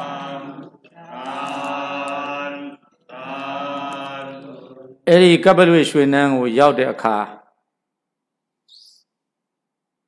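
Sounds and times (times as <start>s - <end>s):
chanting in held tones: 0.0s - 5.4s.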